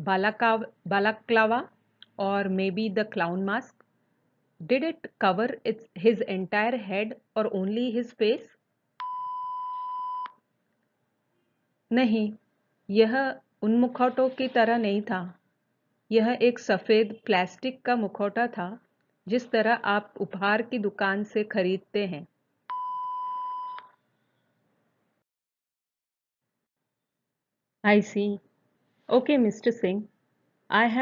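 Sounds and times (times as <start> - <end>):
steady electronic beep: 22.7 - 23.9.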